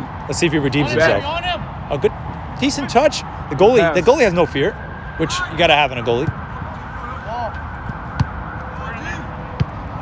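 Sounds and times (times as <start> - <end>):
outdoor background noise: 0.0 - 10.0
distant players shouting: 5.2 - 10.0
soccer ball kick thuds: 7.8 - 8.5, 9.5 - 10.0.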